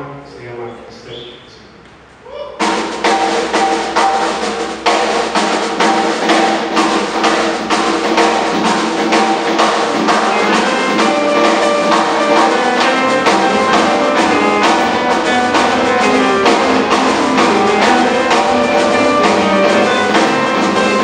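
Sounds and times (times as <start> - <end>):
drum kit strikes: 2.6 - 21.0
live band playing: 2.6 - 21.0.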